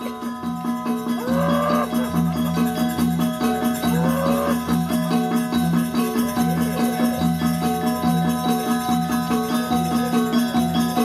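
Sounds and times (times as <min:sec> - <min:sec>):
gamelan metallophone strokes: 0:00.0 - 0:11.0
long rising vocal call: 0:01.2 - 0:02.1, 0:03.9 - 0:04.8.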